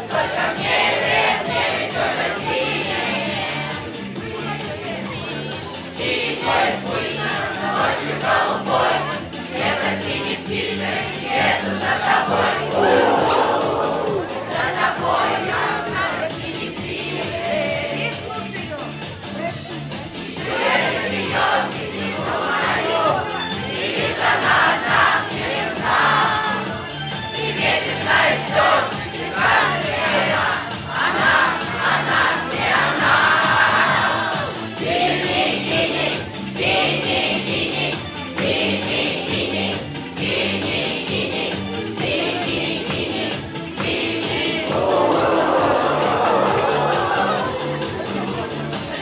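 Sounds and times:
children singing together: 0.0s - 4.2s, 5.9s - 18.0s, 27.5s - 49.0s
karaoke backing track: 0.0s - 49.0s.

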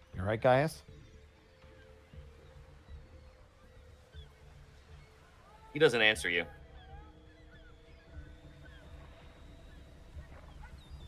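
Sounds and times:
low steady tones: 0.0s - 11.0s.

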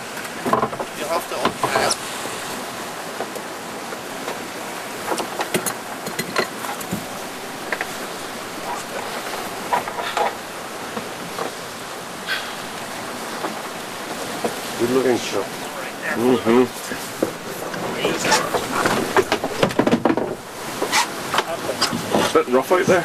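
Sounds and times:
sea water rushing: 0.0s - 23.0s
wind: 0.0s - 23.0s
short knocks and clatter: 17.2s - 22.4s.

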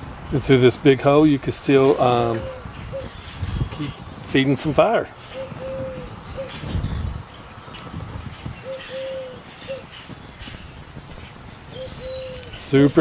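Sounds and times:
wind rumble on microphone: 0.0s - 13.0s
dove cooing: 2.2s - 3.8s, 5.2s - 7.2s, 8.5s - 10.0s, 11.7s - 12.6s.

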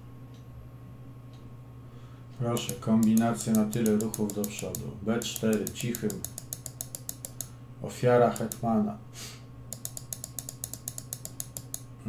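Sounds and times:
mouse scroll wheel ticking: 2.4s - 7.5s, 8.2s - 8.7s, 9.7s - 11.8s.

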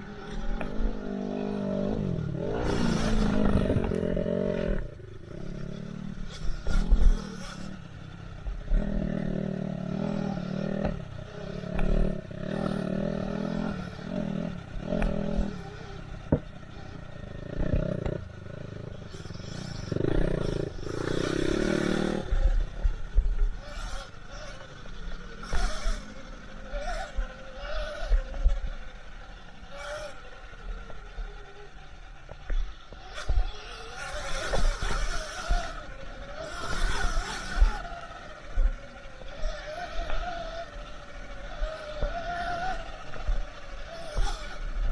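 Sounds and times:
motorcycle engine revving: 0.0s - 44.9s.

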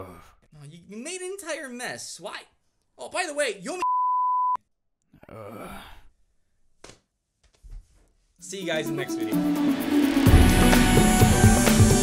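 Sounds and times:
man sighing: 5.1s - 6.1s.

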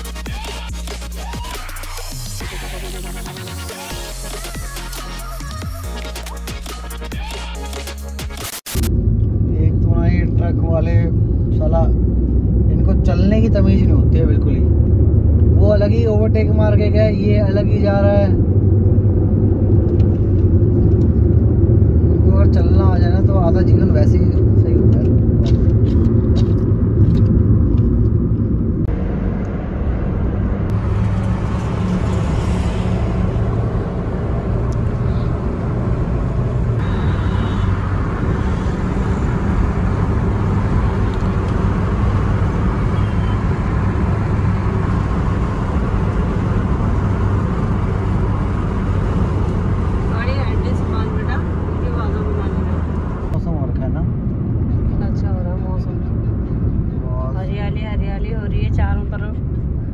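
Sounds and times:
car engine hum: 8.8s - 59.9s.

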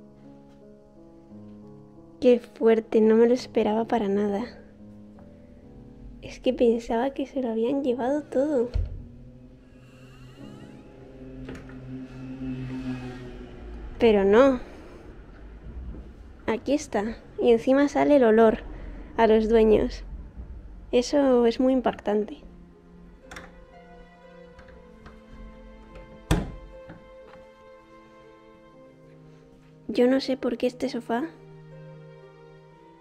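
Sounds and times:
background music: 0.0s - 33.0s
wardrobe door thunk: 8.6s - 9.2s, 24.6s - 27.0s
wardrobe door latch click: 23.3s - 23.6s.

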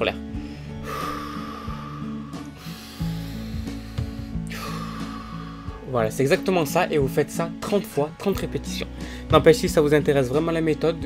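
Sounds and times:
background music: 0.0s - 11.0s
person breathing deeply: 0.3s - 5.9s, 9.0s - 9.3s.

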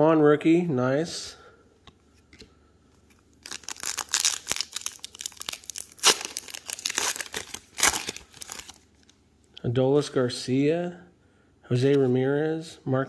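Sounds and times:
plastic wrapper crinkling: 3.1s - 9.2s.

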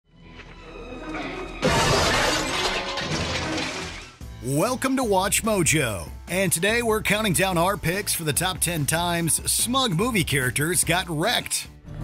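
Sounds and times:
dramatic film score music: 0.1s - 4.5s
glass window shattering: 1.6s - 4.2s.

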